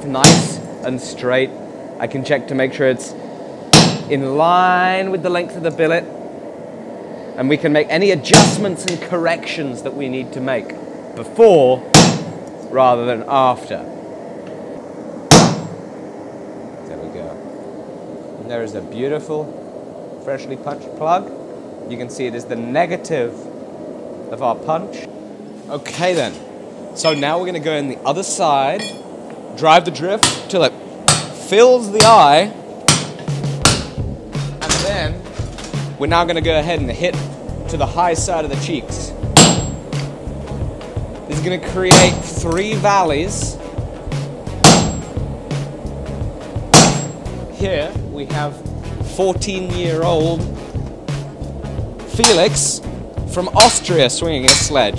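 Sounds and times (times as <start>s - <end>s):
hammer blow on hot metal: 0.0s - 54.9s
metallic ring: 27.0s - 27.4s, 28.7s - 29.1s, 44.8s - 45.2s, 46.9s - 47.2s.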